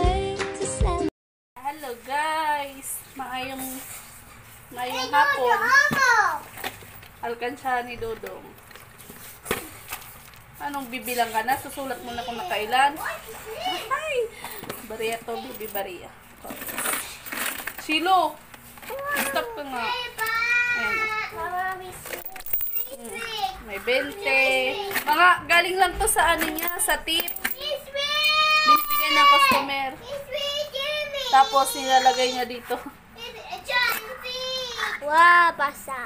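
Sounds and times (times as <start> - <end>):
toddler sing-song voice: 0.0 - 1.1
child talking: 4.8 - 6.5, 12.0 - 14.2, 18.9 - 25.1, 27.6 - 32.5, 33.2 - 36.0.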